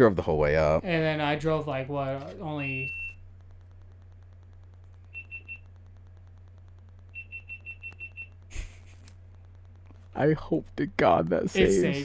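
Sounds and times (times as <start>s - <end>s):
low electrical hum: 0.0s - 12.0s
high electronic beeps: 2.2s - 8.5s.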